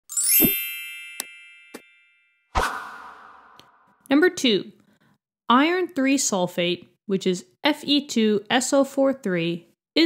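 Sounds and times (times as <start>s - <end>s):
shimmering chime sweeping up: 0.1s - 3.1s.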